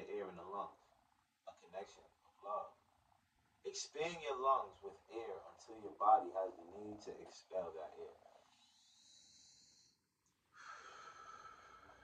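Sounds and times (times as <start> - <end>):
man breathing: 8.4 - 12.0.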